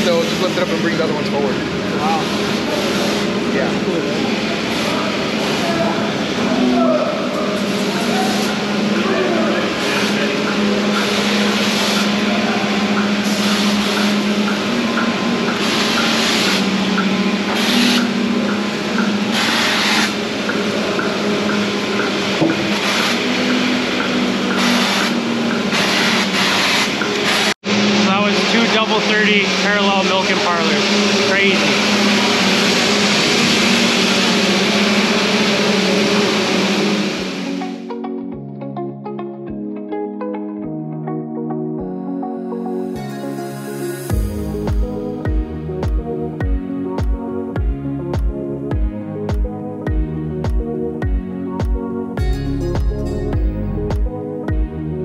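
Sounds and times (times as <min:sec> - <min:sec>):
milking equipment running: 0:00.0 - 0:37.6
ventilation fans humming: 0:00.0 - 0:37.9.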